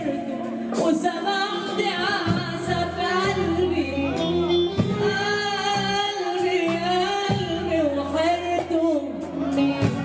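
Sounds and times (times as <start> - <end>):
instrumental accompaniment: 0.0 - 10.0.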